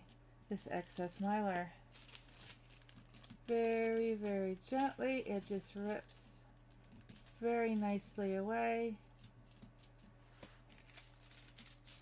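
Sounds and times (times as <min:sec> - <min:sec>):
faint crinkling of thin film tearing: 0:00.8 - 0:06.2, 0:10.6 - 0:12.0.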